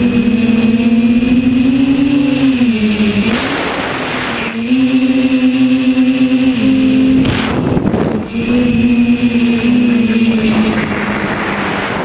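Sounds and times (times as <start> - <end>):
quadcopter motors buzzing: 0.0 - 12.0
wind rushing on microphone: 6.5 - 12.0.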